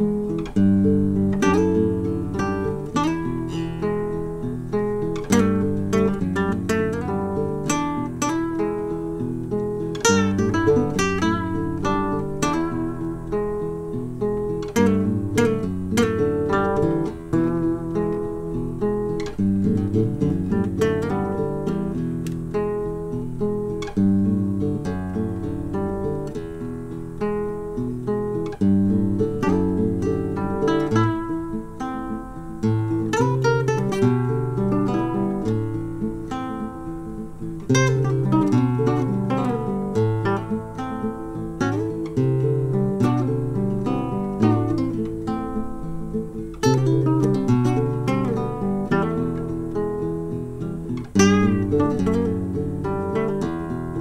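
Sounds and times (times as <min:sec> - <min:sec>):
acoustic guitar music: 0:00.0 - 0:54.0.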